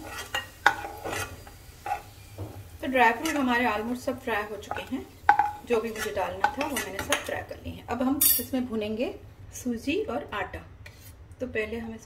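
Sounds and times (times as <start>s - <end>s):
metal spatula scraping a pan: 0.0s - 2.3s, 4.7s - 7.4s
ghee sizzling: 0.0s - 8.4s
clinks on a steel plate: 8.2s - 8.5s.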